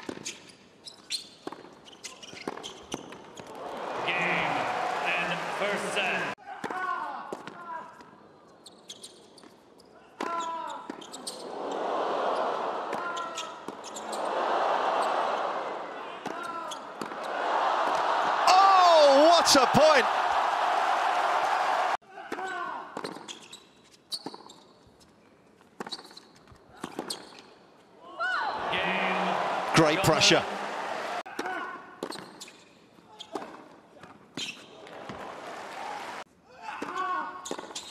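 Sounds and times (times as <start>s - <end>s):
loud crowd noise: 3.5s - 6.4s, 11.2s - 22.0s, 28.3s - 31.3s, 34.8s - 36.2s.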